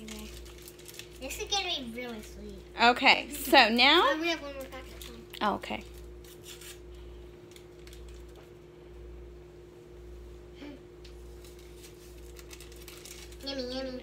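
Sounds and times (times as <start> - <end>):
child's voice: 0.0 - 0.4, 1.2 - 2.7, 4.1 - 5.3, 13.4 - 14.0
steady low hum: 0.0 - 14.0.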